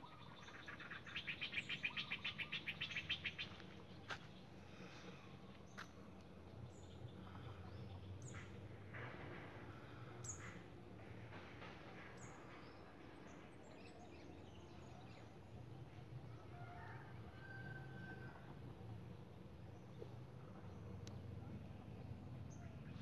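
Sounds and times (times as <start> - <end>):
birds chirping: 0.0 - 15.5
low steady hum: 0.0 - 23.0.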